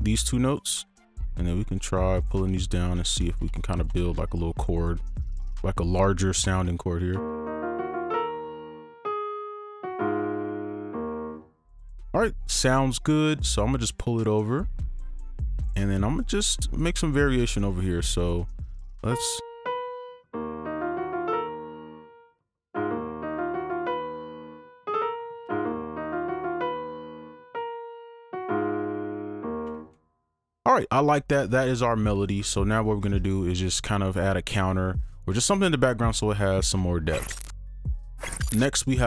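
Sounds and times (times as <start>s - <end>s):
software piano notes and chord: 7.2s - 11.6s, 19.4s - 29.9s.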